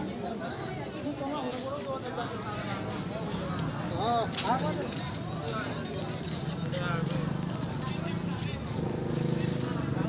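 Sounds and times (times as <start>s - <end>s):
people talking in crowd: 0.0s - 10.0s.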